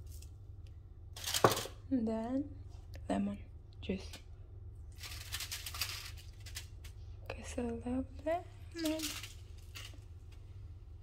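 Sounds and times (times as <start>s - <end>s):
juice pattering onto foil: 4.9s - 7.0s, 8.8s - 10.4s.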